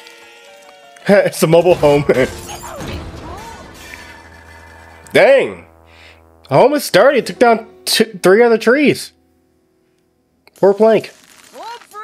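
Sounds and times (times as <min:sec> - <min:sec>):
background music: 0:00.0 - 0:11.1
cartoon crash splintering: 0:01.6 - 0:05.2.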